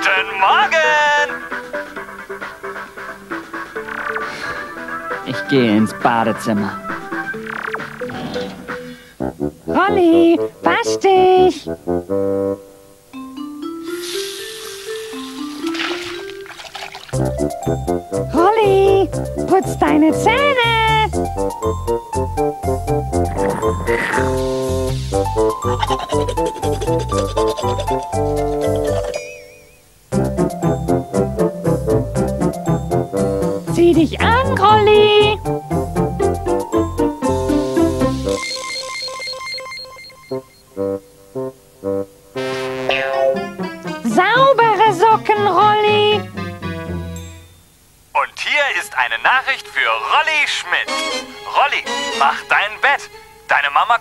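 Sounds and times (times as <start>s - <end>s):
cartoon background music: 0.0s - 47.2s, 48.4s - 54.0s
fast electronic beeping trill: 6.9s - 8.1s, 38.2s - 40.6s
hiss: 13.8s - 15.9s, 24.1s - 25.3s, 37.5s - 38.3s
water splashing in a washbasin: 14.6s - 17.4s.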